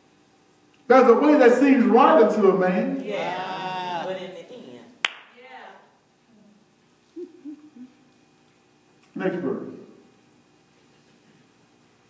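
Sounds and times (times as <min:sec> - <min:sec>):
person humming assent: 0:06.4 - 0:08.0.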